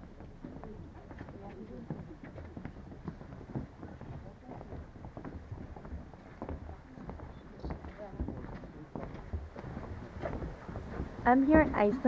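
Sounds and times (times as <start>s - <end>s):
footsteps on wooden boardwalk: 0.0s - 12.0s
people talking: 0.6s - 2.5s, 3.9s - 4.8s, 6.6s - 9.0s, 11.2s - 12.0s.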